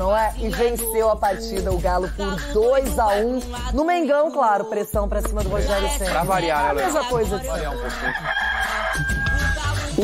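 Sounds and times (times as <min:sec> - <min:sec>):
background music with a beat: 0:00.0 - 0:10.0
rooster crowing: 0:07.9 - 0:09.8.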